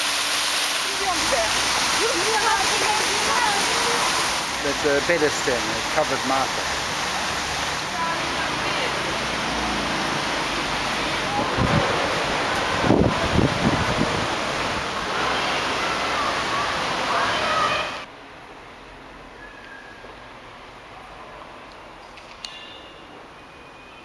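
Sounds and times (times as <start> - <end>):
loud rushing noise: 0.0 - 18.1.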